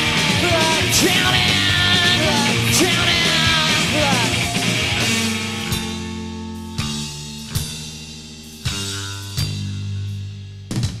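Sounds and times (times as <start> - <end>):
drum and cymbal hits: 0.0 - 11.0
electric guitar and bass chord ringing: 1.3 - 9.9.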